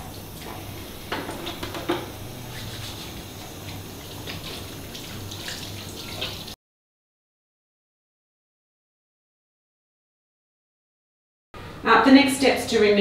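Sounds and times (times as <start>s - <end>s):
tap water running into basin: 0.0s - 6.6s
water splashes: 2.5s - 6.6s.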